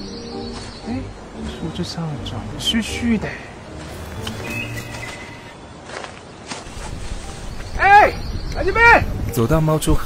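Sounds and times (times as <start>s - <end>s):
footsteps on dry leaves: 3.7s - 7.8s.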